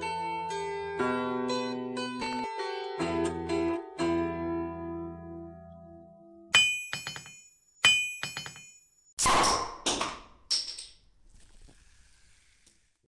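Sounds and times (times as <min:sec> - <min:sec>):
plucked-string music: 0:00.0 - 0:05.9.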